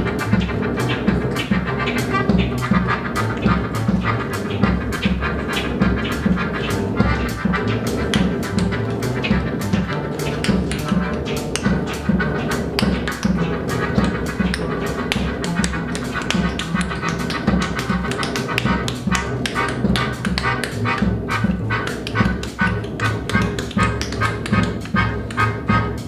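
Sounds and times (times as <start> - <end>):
percussive taps: 0.0 - 25.8
double bass line: 0.0 - 26.0
melodica chords: 0.0 - 26.0.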